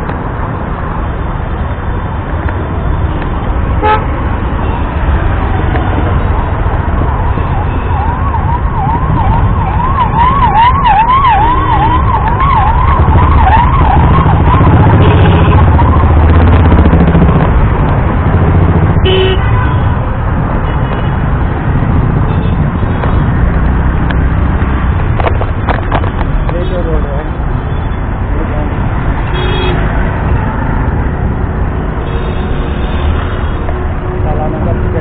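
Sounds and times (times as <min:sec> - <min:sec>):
road traffic rumble: 0:00.0 - 0:35.0
emergency siren wailing: 0:05.2 - 0:17.8.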